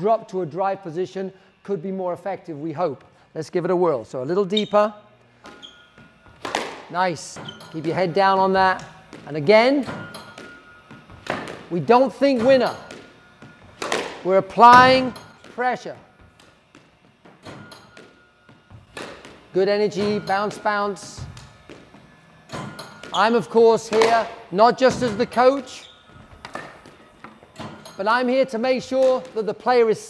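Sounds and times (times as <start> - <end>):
squash ball knock: 6.2 - 6.9, 12.4 - 15.6
squash ball smack with echo: 6.2 - 6.9, 8.8 - 11.8, 12.4 - 15.6, 16.2 - 20.2, 23.8 - 25.2.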